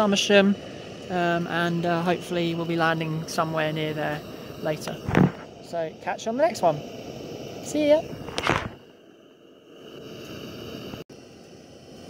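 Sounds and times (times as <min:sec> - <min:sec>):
wind noise on microphone: 0:05.0 - 0:05.5, 0:08.1 - 0:08.8.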